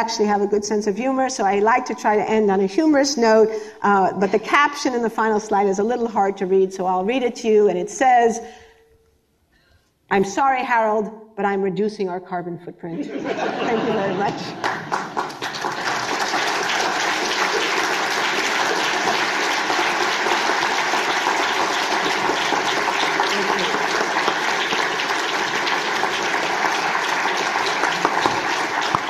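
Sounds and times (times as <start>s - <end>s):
audience applauding: 14.4s - 29.0s.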